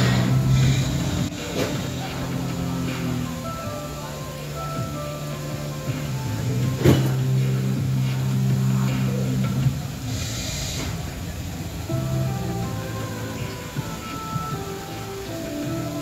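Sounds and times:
hissing rush: 0:00.0 - 0:16.0
low music chords from speakers: 0:00.0 - 0:16.0.

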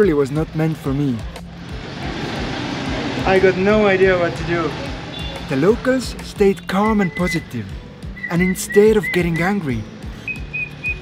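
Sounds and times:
van driving past: 0:01.1 - 0:06.2.

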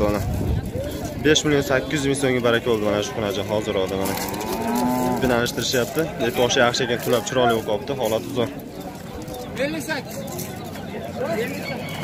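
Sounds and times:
cow mooing: 0:04.0 - 0:05.5.

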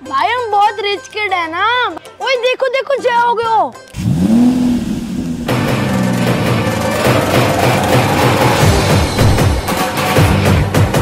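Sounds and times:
car engine revving: 0:04.0 - 0:10.1
music with drums: 0:05.5 - 0:11.0.

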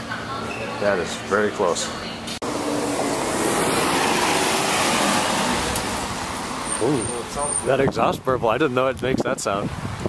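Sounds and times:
car exhaust pulling away: 0:02.4 - 0:07.9.

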